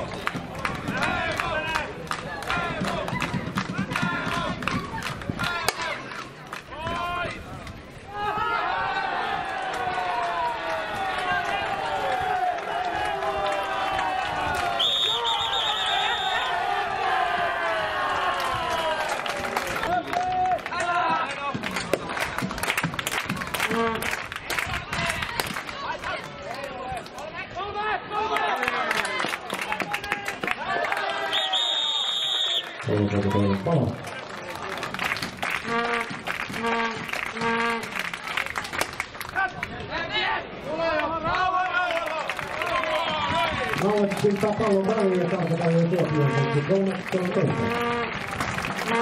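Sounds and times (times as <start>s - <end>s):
players shouting: 8.1s - 21.7s
long high-pitched whistle blast: 14.8s - 16.5s, 31.3s - 32.7s.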